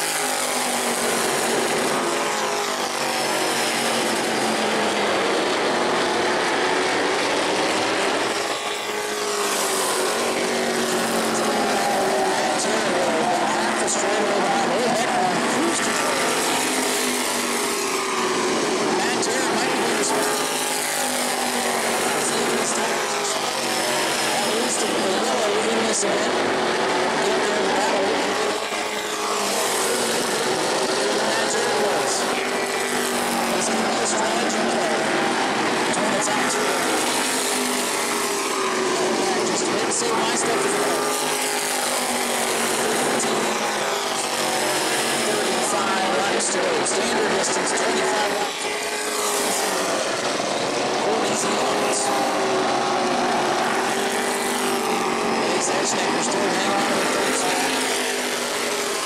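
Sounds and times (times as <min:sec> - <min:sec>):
racing car engines: 0:00.0 - 0:59.0.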